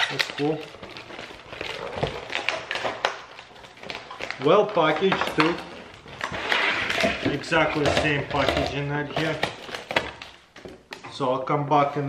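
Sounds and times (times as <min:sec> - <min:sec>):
plastic packaging rustling: 0:00.0 - 0:11.0.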